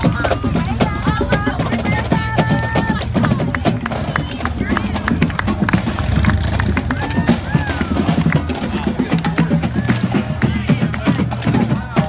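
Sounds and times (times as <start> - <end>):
crowd chatter: 0.0 - 12.0
horse hooves on pavement: 0.0 - 12.0.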